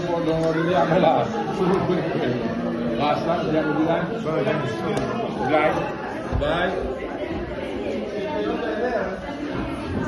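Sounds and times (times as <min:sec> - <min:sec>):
chatter of several voices: 0:00.0 - 0:10.0.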